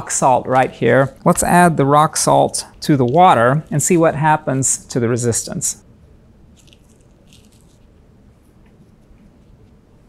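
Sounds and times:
rock salt crunchy rustles: 0:06.5 - 0:08.1.

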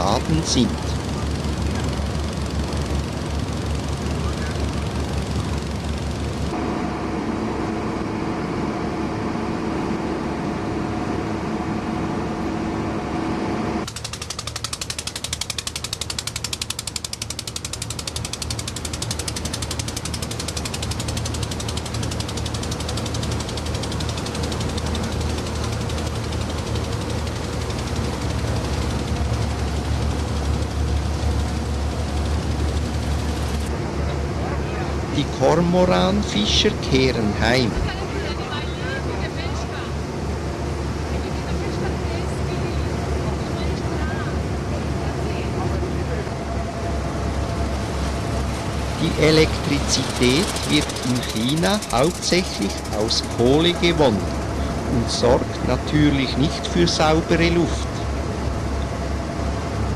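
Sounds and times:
boat engines chugging: 0:00.0 - 0:06.6, 0:13.8 - 0:59.9
steady humming tone: 0:00.0 - 0:59.9.

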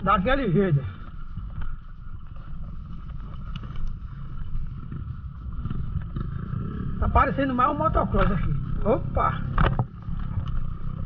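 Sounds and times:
dirt bike engine rumble: 0:00.0 - 0:11.0.

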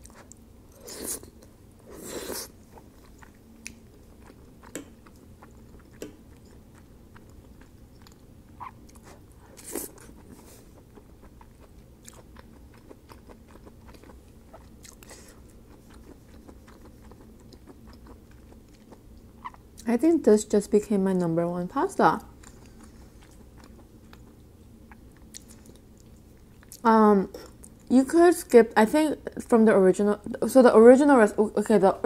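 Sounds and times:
person chewing food: 0:00.0 - 0:19.8, 0:22.4 - 0:27.9.

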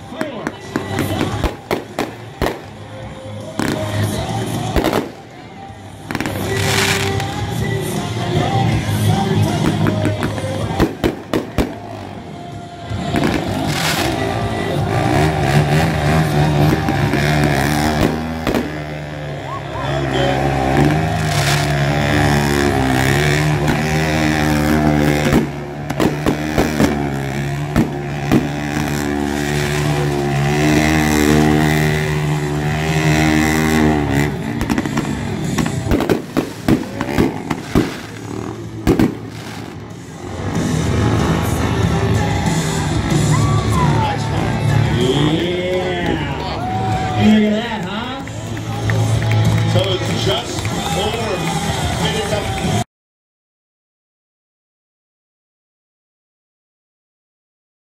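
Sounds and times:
fireworks bangs and crackles: 0:00.0 - 0:43.3
steady low drone: 0:00.0 - 0:52.0
music: 0:00.0 - 0:52.8.

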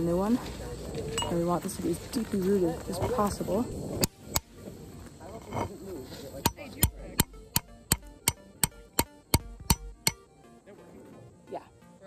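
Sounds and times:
hammer striking metal spike: 0:06.4 - 0:10.2.

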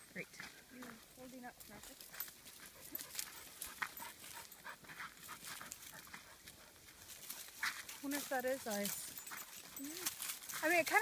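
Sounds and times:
dog panting: 0:01.8 - 0:11.0.

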